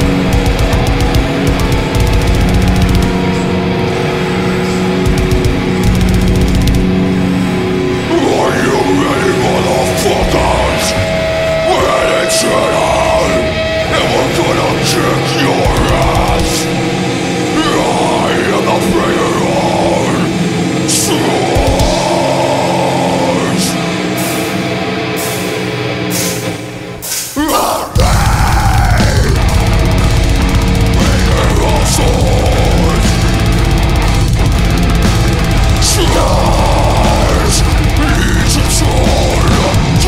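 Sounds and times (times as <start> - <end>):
fast dense drumming: 0.0 - 4.0, 4.9 - 7.3, 14.0 - 23.9, 28.0 - 40.0
rapid cymbal hits: 0.0 - 8.1, 18.4 - 27.4, 28.2 - 40.0
death metal band playing: 0.0 - 40.0
distorted guitars and bass: 0.0 - 40.0.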